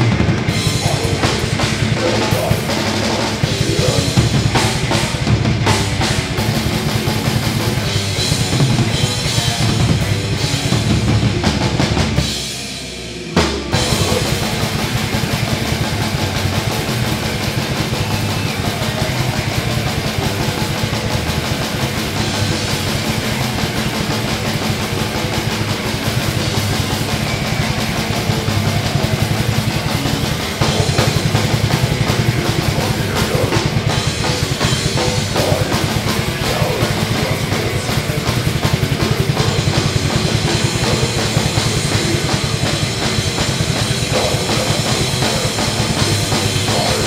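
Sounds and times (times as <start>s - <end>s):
heavy metal band playing live: 0.0s - 47.0s.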